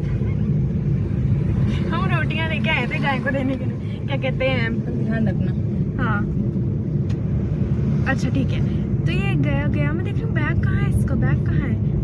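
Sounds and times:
car cabin road rumble: 0:00.0 - 0:12.0
people talking: 0:01.8 - 0:06.3, 0:08.1 - 0:11.8.

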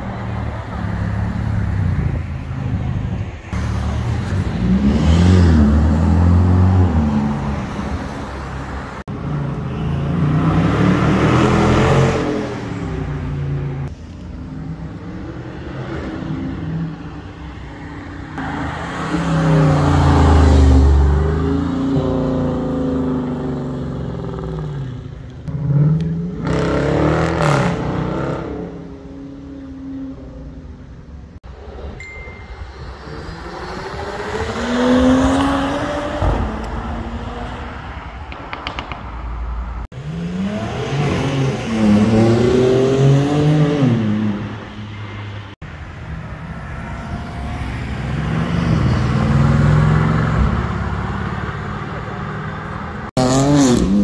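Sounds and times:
street traffic noise: 0:00.0 - 0:54.0
sports cars accelerating: 0:03.5 - 0:30.6, 0:32.7 - 0:38.9, 0:39.8 - 0:45.4, 0:46.9 - 0:54.0.

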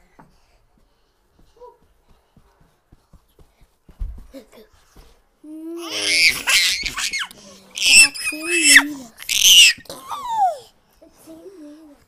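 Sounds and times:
children squealing with laughter: 0:05.9 - 0:10.5.

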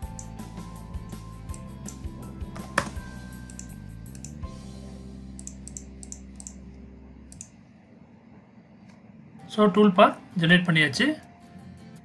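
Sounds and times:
computer mouse clicks: 0:03.5 - 0:04.4, 0:05.4 - 0:06.7, 0:07.3 - 0:07.6
faint low hum: 0:04.9 - 0:10.4.

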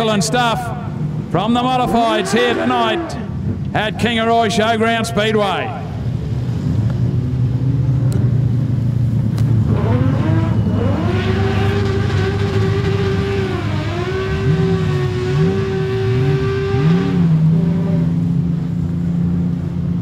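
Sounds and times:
car engines idling: 0:00.0 - 0:16.1, 0:16.8 - 0:20.0
car engine revving high: 0:01.5 - 0:03.5, 0:09.6 - 0:18.4.

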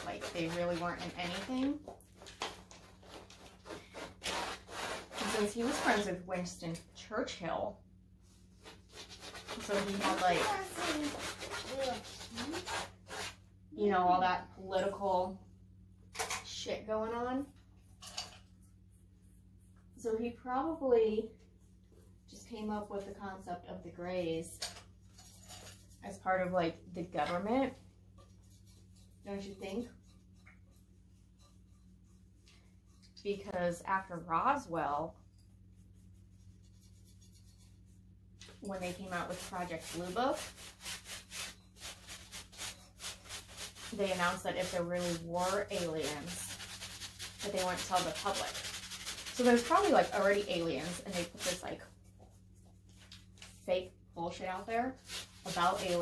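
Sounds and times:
pencil scratching on canvas: 0:00.0 - 0:01.6, 0:03.1 - 0:06.2, 0:08.6 - 0:13.4, 0:28.2 - 0:33.1, 0:35.6 - 0:38.1, 0:38.7 - 0:52.8, 0:54.9 - 0:56.0
low electrical hum: 0:00.0 - 0:56.0.

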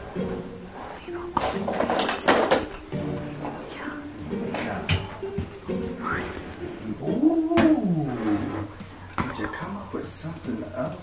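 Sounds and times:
wavering vocal call: 0:06.0 - 0:08.7.

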